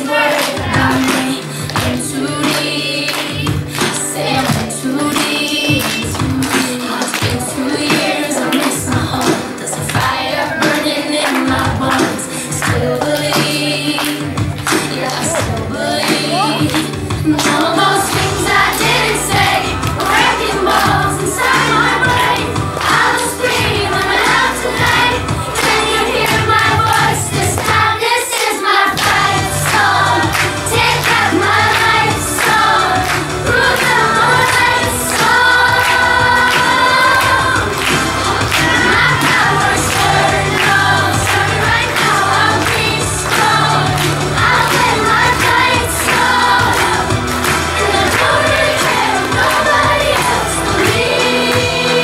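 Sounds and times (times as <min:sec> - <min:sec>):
instrumental accompaniment with bass: 0:00.0 - 0:27.9, 0:29.0 - 0:52.0
children singing: 0:00.0 - 0:52.0.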